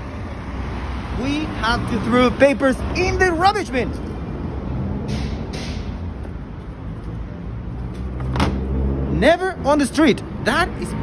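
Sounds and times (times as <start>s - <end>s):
traffic rumble: 0.0s - 11.0s
sharp knock: 5.0s - 6.0s.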